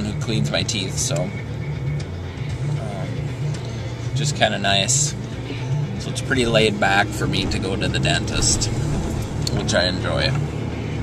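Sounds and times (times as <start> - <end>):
car engine and road noise inside: 0.0 - 11.0
music playing: 0.0 - 11.0.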